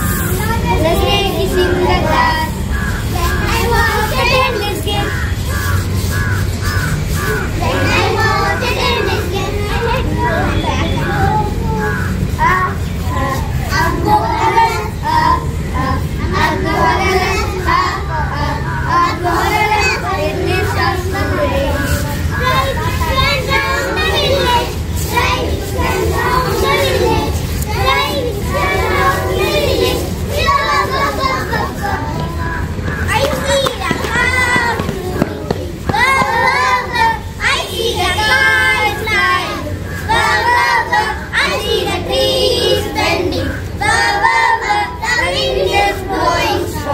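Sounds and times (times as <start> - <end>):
steady low rumble: 0.0 - 46.9
young children singing: 0.0 - 46.9.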